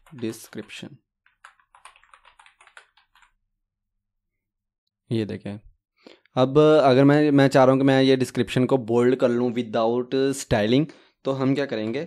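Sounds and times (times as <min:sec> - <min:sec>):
keyboard typing: 0:00.0 - 0:03.4.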